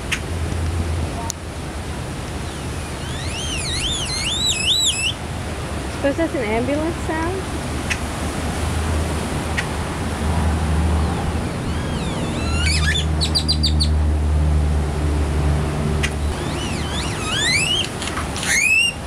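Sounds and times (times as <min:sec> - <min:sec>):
surf washing: 0:00.0 - 0:19.0
bird whistling and clicking: 0:03.0 - 0:05.2, 0:11.7 - 0:14.0, 0:16.0 - 0:19.0.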